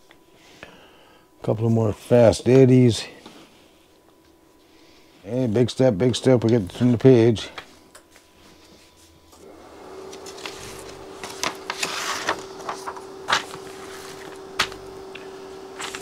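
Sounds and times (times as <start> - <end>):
steady hum: 0.0 - 16.0
paper page rustling: 10.1 - 16.0.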